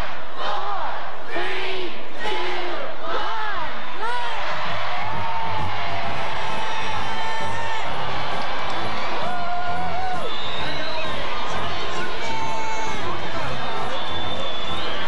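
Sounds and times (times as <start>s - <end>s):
music playing: 3.6s - 15.0s
crowd cheering and whooping: 4.3s - 15.0s.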